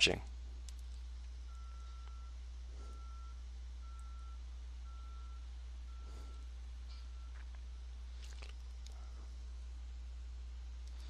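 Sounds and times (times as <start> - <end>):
steady low hum: 0.0 - 11.0
faint electronic beep: 1.4 - 8.0.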